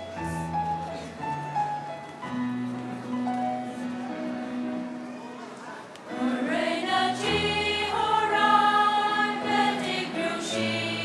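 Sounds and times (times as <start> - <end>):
choir singing: 6.1 - 11.0.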